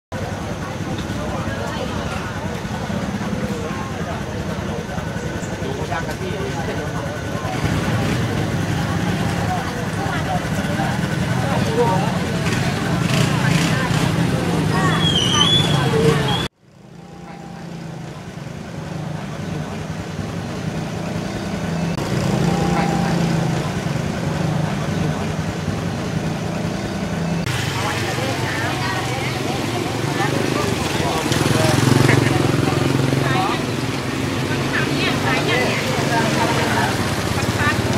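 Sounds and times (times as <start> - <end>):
people talking: 0.1 - 37.9
motor vehicle engine humming: 0.2 - 37.9.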